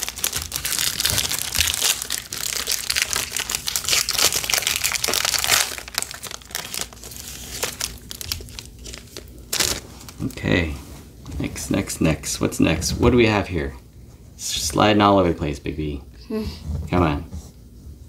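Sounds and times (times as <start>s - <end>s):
foil wrapper crinkling: 0.0s - 10.5s.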